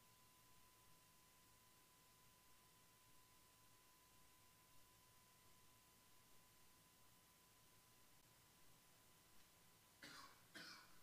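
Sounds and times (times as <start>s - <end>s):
faint steady high tone: 0.0s - 9.2s
faint coughs: 10.0s - 11.0s.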